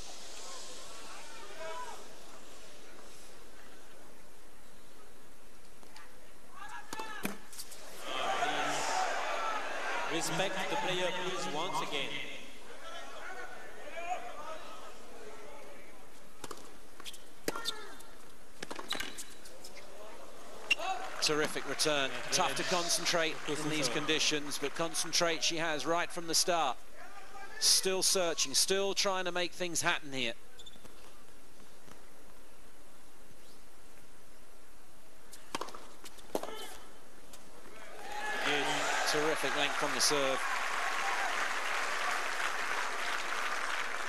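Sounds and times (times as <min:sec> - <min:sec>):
murmur of stadium crowd: 0:00.0 - 0:30.5, 0:36.8 - 0:44.0
commentator speaking: 0:21.2 - 0:26.8
tennis ball bounces and racket hits: 0:35.3 - 0:36.7.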